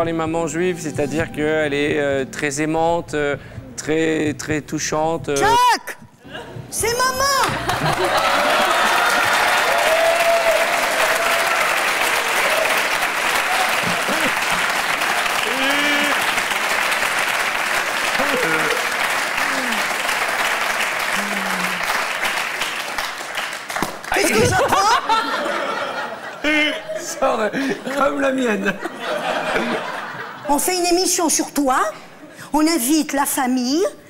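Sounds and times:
audience applauding: 7.4s - 25.2s.

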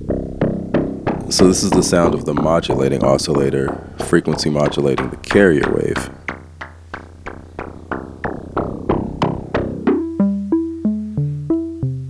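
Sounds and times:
plucky synthesizer notes: 0.0s - 12.0s.

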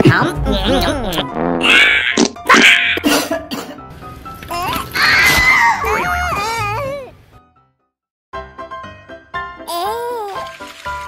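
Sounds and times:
light background music: 0.0s - 7.6s, 8.4s - 11.0s.

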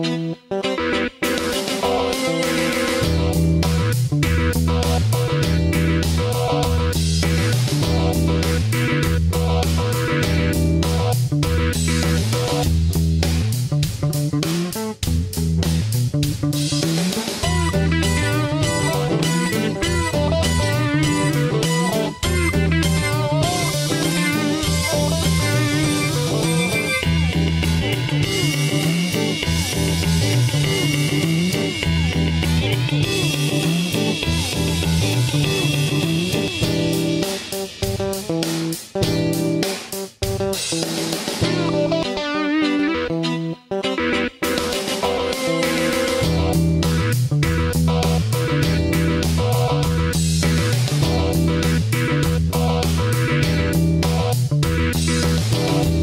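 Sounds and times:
guitar-led instrumental music: 0.0s - 56.0s.

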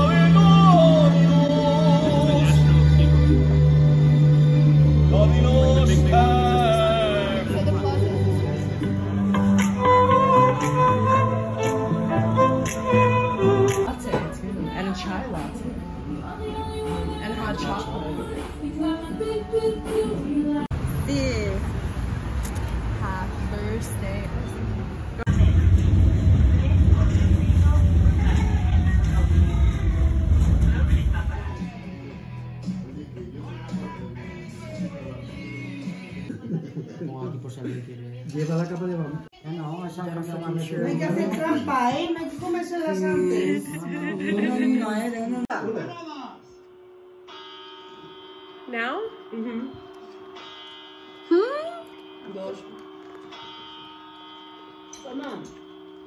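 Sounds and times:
background music: 0.0s - 20.8s, 25.2s - 36.8s.

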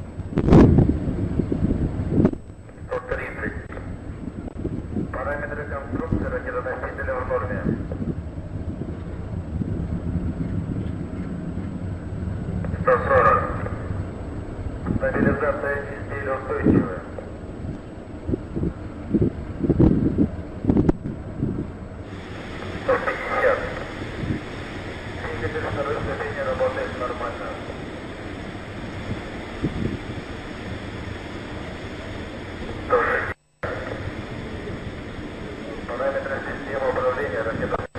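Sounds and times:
wind on microphone: 0.0s - 33.0s
distant rocket rumble: 0.0s - 37.9s
steady rushing noise: 0.0s - 37.9s
announcer voice over radio: 2.9s - 3.8s, 5.1s - 7.8s, 12.8s - 13.8s, 14.9s - 17.1s, 22.8s - 24.0s, 25.2s - 27.8s, 32.9s - 34.0s, 35.8s - 37.9s.

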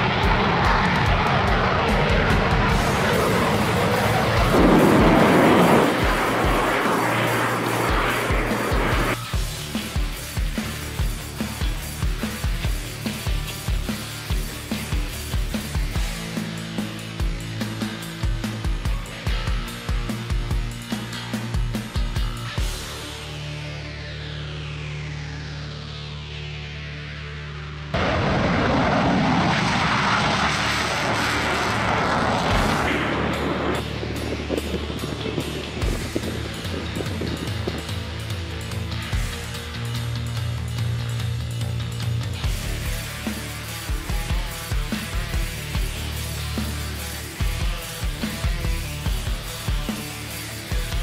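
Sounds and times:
loud jet engine noise: 0.0s - 23.3s, 27.9s - 39.8s
music with drum beat: 8.0s - 23.2s, 34.2s - 51.0s.

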